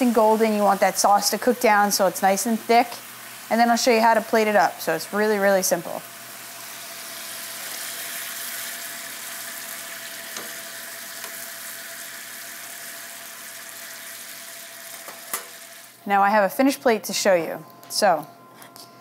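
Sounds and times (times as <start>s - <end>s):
chicken sizzling in a frying pan: 0.0s - 16.0s.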